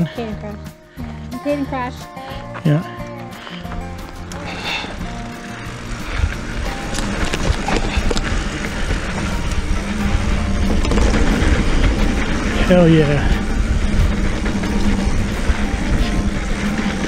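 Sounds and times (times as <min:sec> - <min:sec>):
background music with steady beat: 0:00.0 - 0:17.0
bike clicks and rattles: 0:00.1 - 0:17.0
bike tyres rumbling on dirt: 0:03.5 - 0:17.0.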